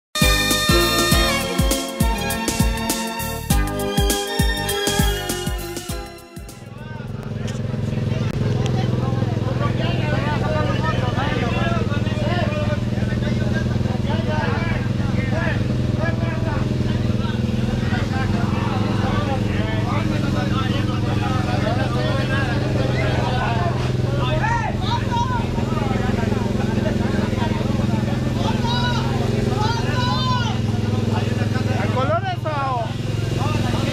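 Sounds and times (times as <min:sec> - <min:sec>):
chatter of many people: 0:06.5 - 0:33.9
motorcycle engine idling: 0:06.5 - 0:33.9.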